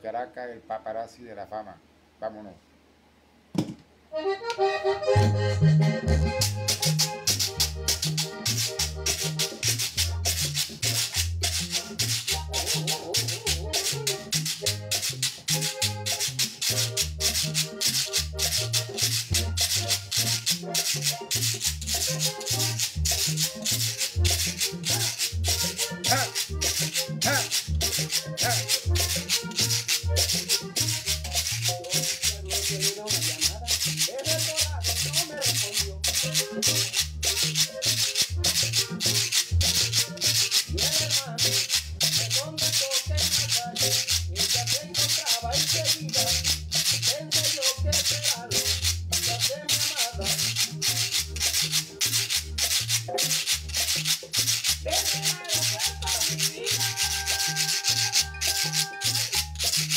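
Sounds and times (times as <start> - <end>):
recorded song with accordion: 4.1 - 59.9
pulsing bass: 5.0 - 17.5
scraper scraped in rhythm: 6.3 - 59.9.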